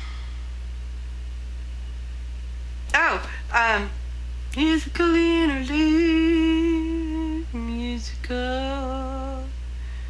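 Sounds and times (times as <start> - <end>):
steady low hum: 0.0 - 10.0
woman speaking: 2.9 - 4.0.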